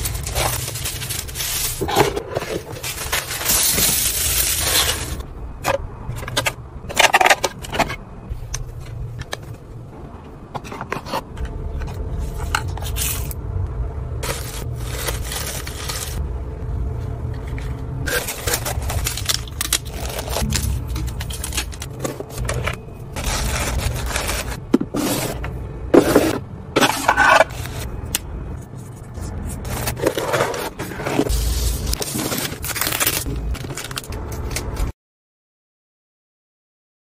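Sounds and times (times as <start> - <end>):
paper and fabric rustling: 0.0 - 5.2, 14.2 - 16.2, 17.4 - 27.9, 28.8 - 34.9.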